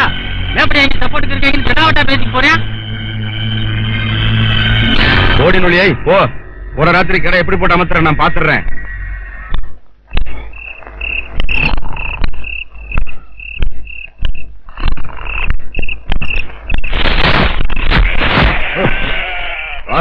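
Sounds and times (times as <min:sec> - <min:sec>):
night insects chirping: 0:05.6 - 0:17.8
sharp knocks: 0:11.3 - 0:18.6
goats bleating: 0:17.9 - 0:20.0.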